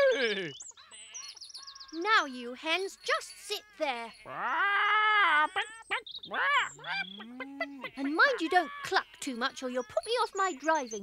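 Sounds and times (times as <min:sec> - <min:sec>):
person imitating hens clucking: 0:00.0 - 0:00.6, 0:04.3 - 0:09.1.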